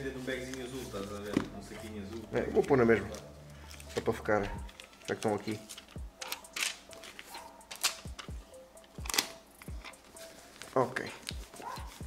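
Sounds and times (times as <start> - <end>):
faint music: 0.0 - 12.0
paper seal crackling: 2.5 - 12.0.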